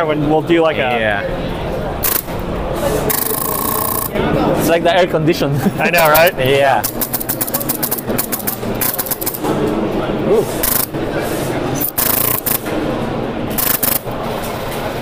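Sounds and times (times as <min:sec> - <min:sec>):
busy hall din: 0:00.0 - 0:15.0
rapid sharp clicking bursts: 0:02.0 - 0:02.3, 0:03.1 - 0:04.2, 0:06.0 - 0:09.4, 0:10.6 - 0:10.9, 0:11.8 - 0:12.6, 0:13.5 - 0:14.1.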